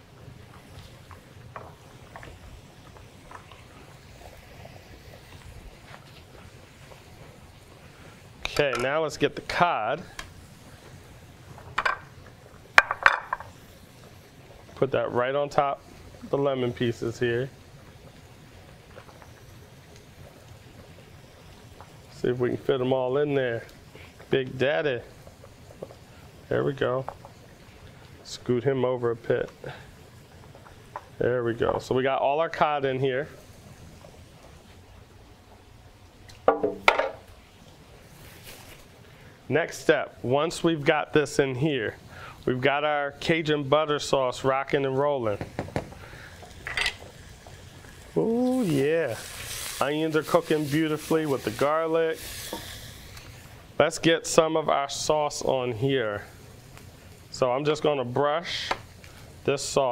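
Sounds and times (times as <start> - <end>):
utensils and dishes clinking: 46.6 - 47.0.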